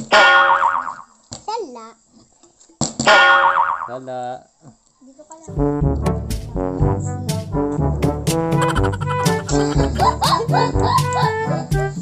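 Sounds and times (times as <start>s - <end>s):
cartoon boing sound effect: 0.1s - 1.1s, 3.1s - 3.9s, 8.5s - 11.0s.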